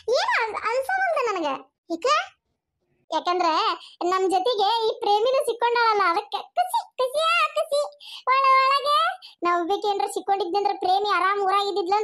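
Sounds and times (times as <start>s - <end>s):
cartoon voice chattering speech: 0.0s - 2.4s, 3.1s - 12.0s.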